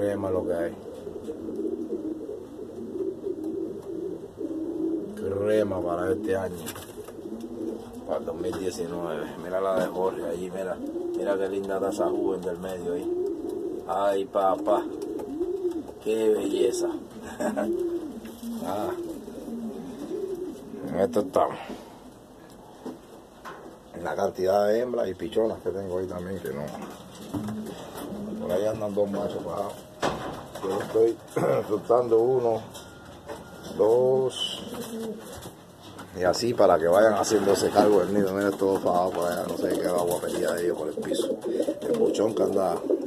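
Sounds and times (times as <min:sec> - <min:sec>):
pigeons cooing: 0:00.0 - 0:43.0.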